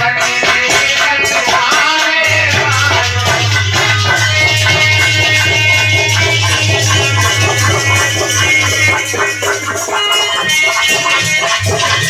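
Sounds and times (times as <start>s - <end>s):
loud music with fast bass beat: 2.3s - 12.0s.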